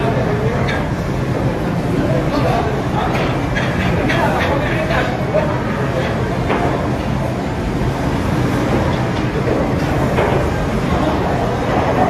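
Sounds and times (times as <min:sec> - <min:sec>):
billiard hall din: 0:00.0 - 0:12.0.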